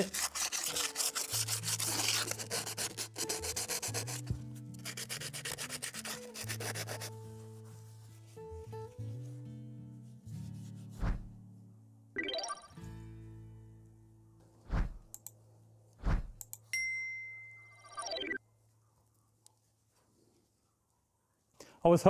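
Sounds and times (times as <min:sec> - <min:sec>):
sandpaper rubbing on metal: 0:00.0 - 0:08.0.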